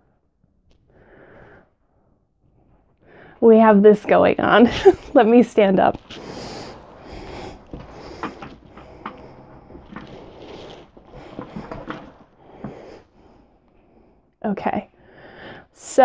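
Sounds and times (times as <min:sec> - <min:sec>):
fabric rustling: 0:04.5 - 0:13.4.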